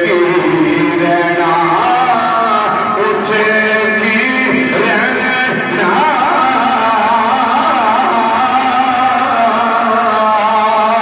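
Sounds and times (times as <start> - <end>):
man chanting through loudspeakers: 0.0 - 11.0.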